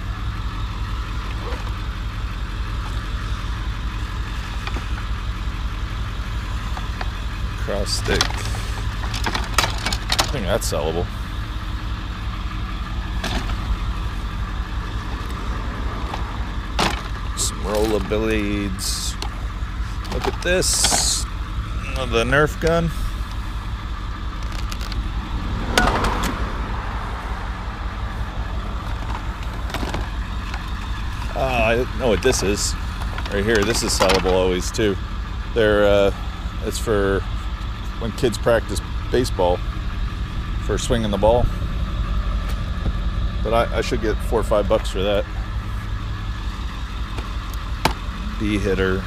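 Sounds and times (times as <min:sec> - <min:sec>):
vehicle engine idling: 0:00.0 - 0:49.0
plastic rattle: 0:28.9 - 0:31.3.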